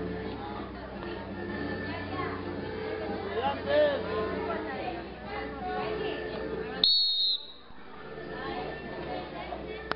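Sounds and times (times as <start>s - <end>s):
loud whistle blast: 6.8s - 7.6s
murmuring voices: 7.8s - 9.9s.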